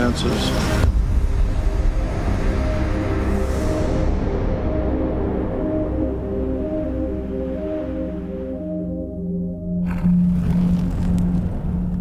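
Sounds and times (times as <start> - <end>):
low drone note: 0.6 - 12.0.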